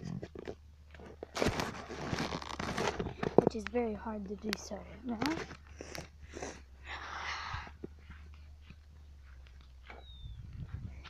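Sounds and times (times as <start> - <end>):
steady low rumble: 0.0 - 11.0
bicycle rustling over grass: 1.0 - 5.8.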